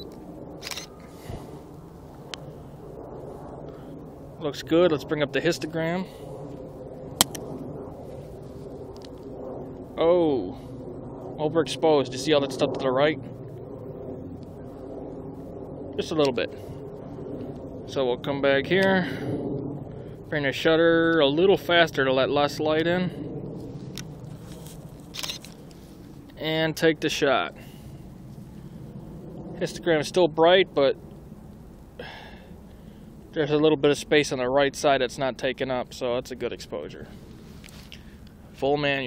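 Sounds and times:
steady low hum: 0.0 - 39.0
camera dial clicks: 25.1 - 25.5.

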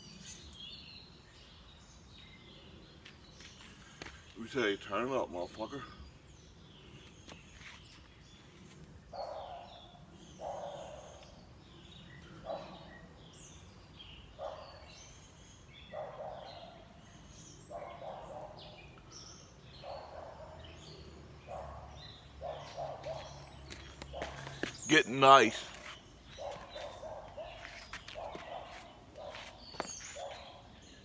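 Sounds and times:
birds chirping and calling: 0.0 - 31.0.

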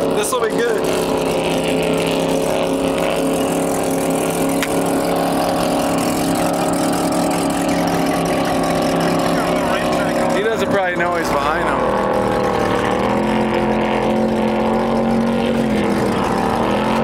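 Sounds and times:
boat engine droning: 0.0 - 17.0.

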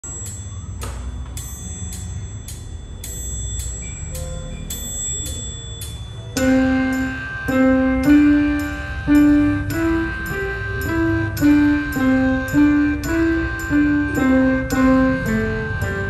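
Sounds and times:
digital piano melody: 0.0 - 16.0
faint accompaniment: 0.0 - 16.0
metronome clicks: 0.0 - 16.0.

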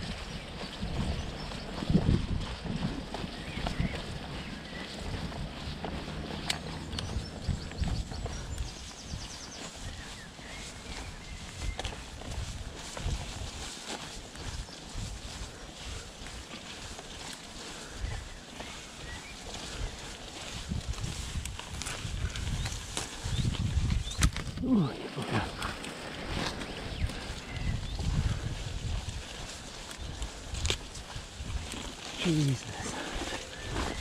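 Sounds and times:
mountain bike tyre noise on dirt: 0.0 - 34.0
plants brushing against bike: 0.0 - 34.0
wind rumble on microphone: 0.0 - 34.0.

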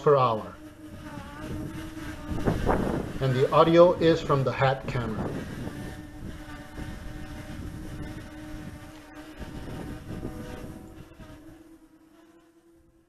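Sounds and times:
quadcopter propellers humming: 0.0 - 13.0
wind buffeting microphone: 0.6 - 11.6.

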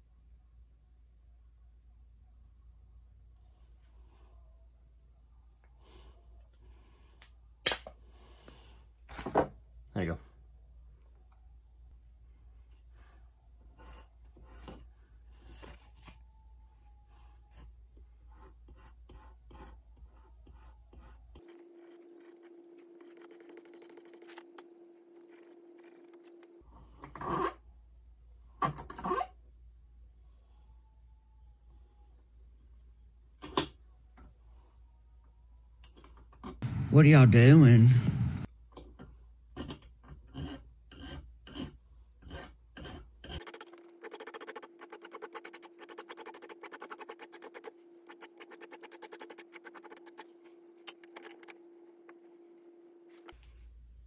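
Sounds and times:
scratching on sandpaper and file: 18.3 - 24.6, 40.3 - 50.3
steady hum: 36.6 - 38.5.

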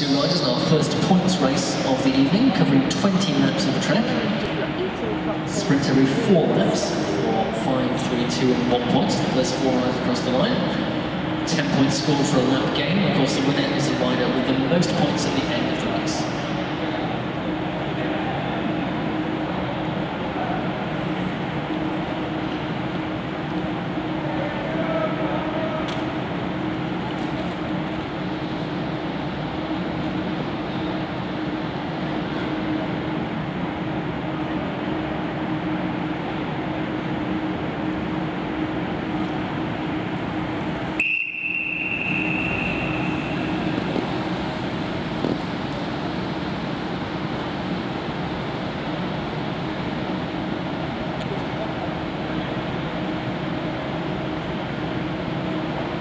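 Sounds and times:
crowd murmur: 0.0 - 41.0, 41.8 - 56.0
constant hum: 0.0 - 56.0
high steady tone: 37.3 - 45.0.

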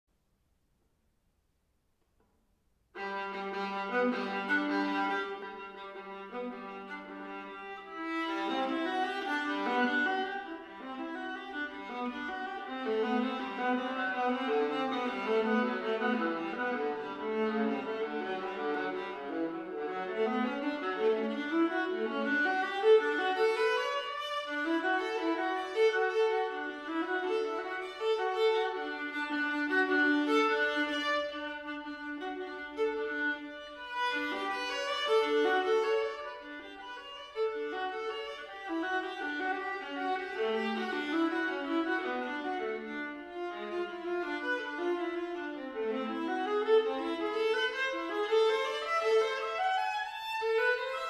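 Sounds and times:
viola bowed melody: 3.0 - 51.0.

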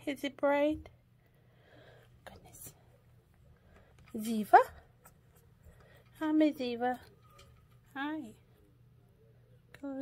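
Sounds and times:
faint breathy sounds: 1.2 - 4.1.

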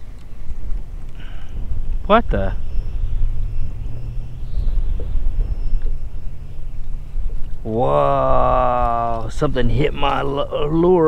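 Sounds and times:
wind buffeting microphone: 0.0 - 11.0
faint ticks: 0.1 - 1.4.

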